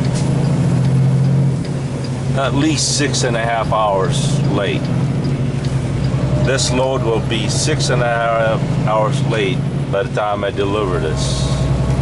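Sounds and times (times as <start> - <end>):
road noise on wet pavement: 0.0 - 12.0
truck engine drone: 0.0 - 12.0.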